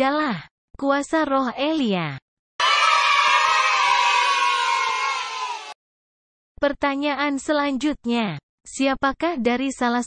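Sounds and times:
crowd cheering: 0:02.6 - 0:05.8.

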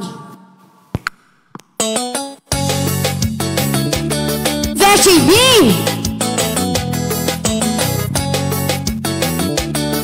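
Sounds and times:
backing track music: 0:01.8 - 0:10.0.

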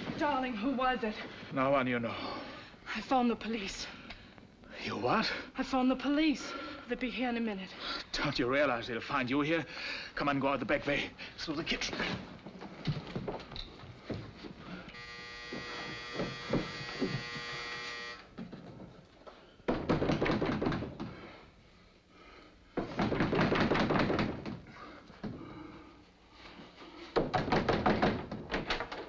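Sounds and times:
doorbell buzzer: 0:15.0 - 0:18.3
loud knocking on wooden door: 0:19.7 - 0:21.0, 0:22.8 - 0:24.6, 0:27.2 - 0:28.5.

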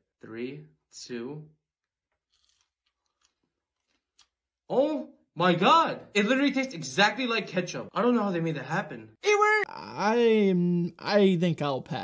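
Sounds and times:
person chewing crunchy food: 0:02.2 - 0:04.5.

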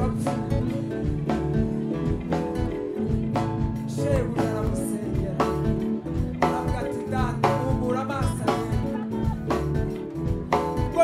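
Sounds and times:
gospel choir singing: 0:00.0 - 0:07.6
guitar and drums: 0:00.0 - 0:11.0.

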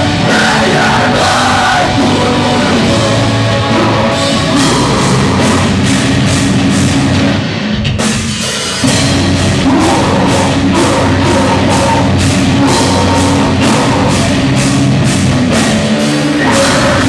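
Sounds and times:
live metalcore band playing: 0:00.0 - 0:17.0.

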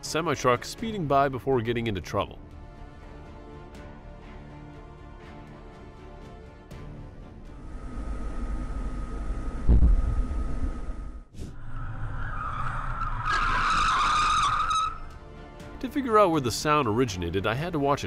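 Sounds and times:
vehicle road noise: 0:07.5 - 0:15.6
high wavering squeal: 0:07.6 - 0:15.1.

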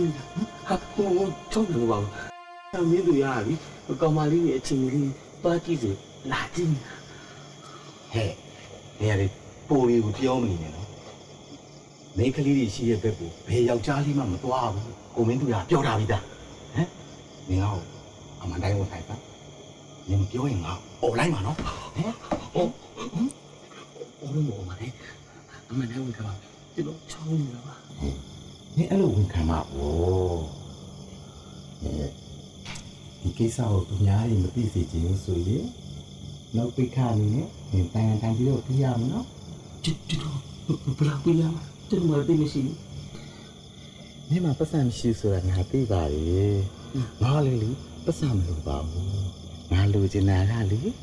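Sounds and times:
men talking: 0:00.0 - 0:11.0, 0:17.5 - 0:19.2, 0:20.1 - 0:30.6, 0:33.2 - 0:35.8, 0:36.5 - 0:42.8, 0:44.3 - 0:51.0
crickets chirping: 0:00.0 - 0:51.0.

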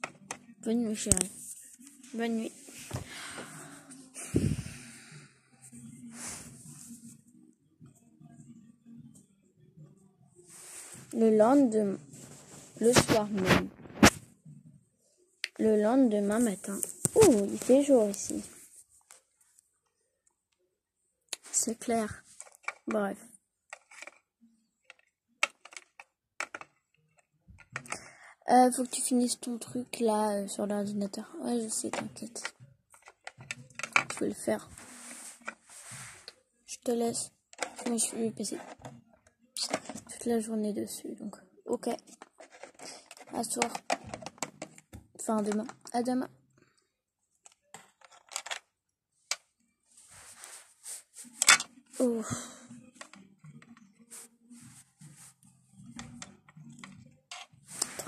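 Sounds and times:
soft rustle: 0:34.6 - 0:36.4, 0:49.9 - 0:51.4.

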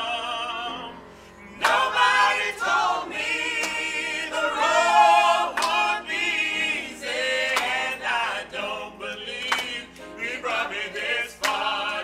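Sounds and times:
vocal ensemble singing in harmony: 0:00.0 - 0:12.0.

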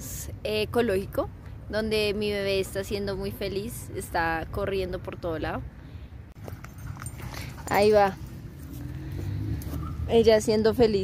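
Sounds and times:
car engine rumbling: 0:06.3 - 0:11.0.

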